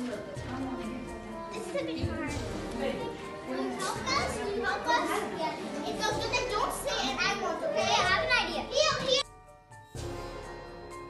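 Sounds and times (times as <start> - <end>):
children chattering and calling out: 0.0 - 9.2.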